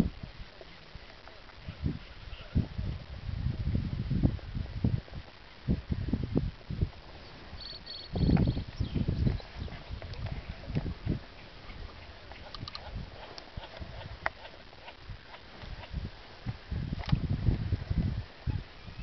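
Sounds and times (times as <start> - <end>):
high clicks: 12.5 - 13.8.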